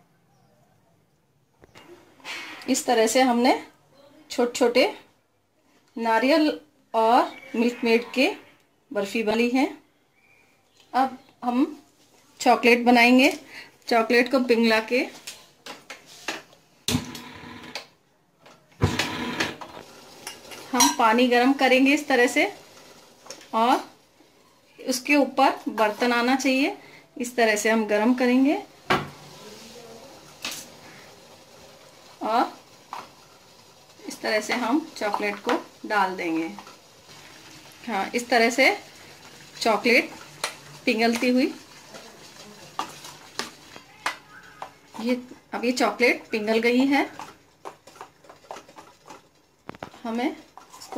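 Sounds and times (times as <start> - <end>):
spoon stirring chocolate: 27.5 - 50.9.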